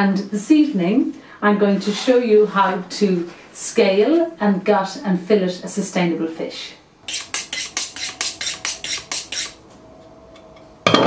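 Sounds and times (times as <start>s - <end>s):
knife honing on sharpening steel: 7.1s - 9.6s.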